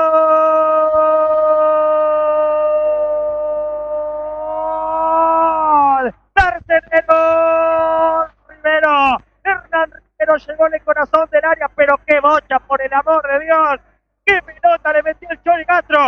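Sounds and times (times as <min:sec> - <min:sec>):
commentator shouting goal cry: 0:05.2 - 0:09.9.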